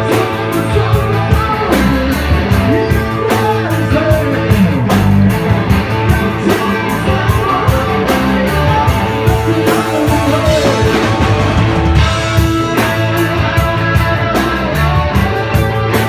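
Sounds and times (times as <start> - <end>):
bass guitar: 0.0 - 16.0
blues-rock band playing: 0.0 - 16.0
electric guitar: 0.0 - 16.0
steady drum beat: 0.0 - 16.0.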